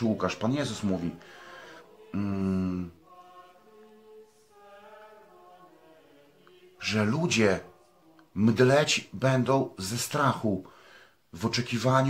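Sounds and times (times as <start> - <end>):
soft background music: 0.0 - 10.7.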